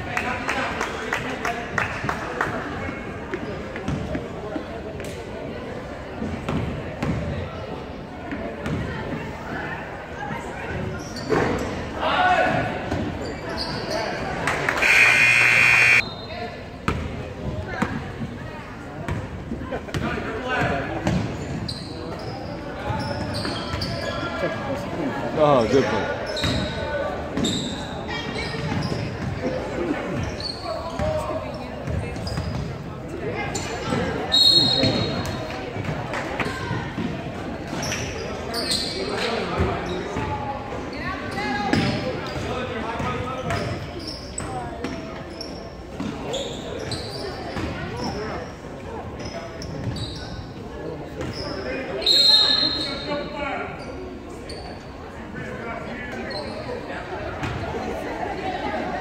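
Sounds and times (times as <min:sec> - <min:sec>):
sneakers squeaking: 0:10.7 - 0:11.7, 0:12.9 - 0:16.0, 0:21.0 - 0:24.4, 0:26.2 - 0:26.8, 0:27.4 - 0:29.4, 0:30.1 - 0:32.9, 0:33.5 - 0:35.4, 0:37.8 - 0:40.3, 0:43.4 - 0:48.6, 0:49.2 - 0:53.1, 0:53.7 - 0:55.1, 0:56.2 - 0:57.7
voices calling out: 0:14.7 - 0:16.0.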